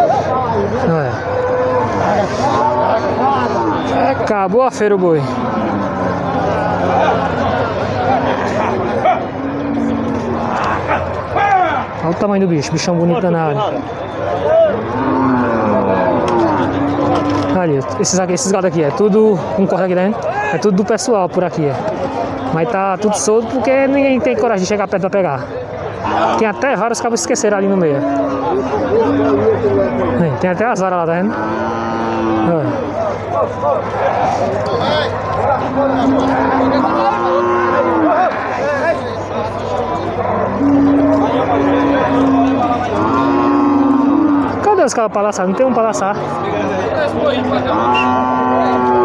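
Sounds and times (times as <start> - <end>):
crowd chatter: 0.0 - 49.0
cattle mooing: 0.9 - 11.3, 14.6 - 18.6, 26.0 - 45.0, 45.9 - 49.0.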